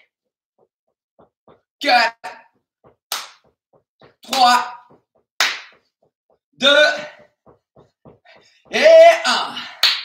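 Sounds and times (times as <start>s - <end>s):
man counting: 1.8s - 2.4s, 4.2s - 5.0s, 6.6s - 7.3s, 8.7s - 9.7s.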